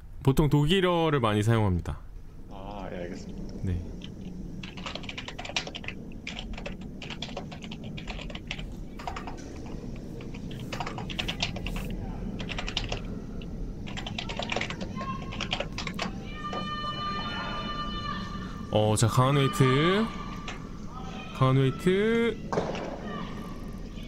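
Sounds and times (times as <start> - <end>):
computer keyboard typing: 4.0 - 16.7
long high-pitched call: 14.9 - 22.5.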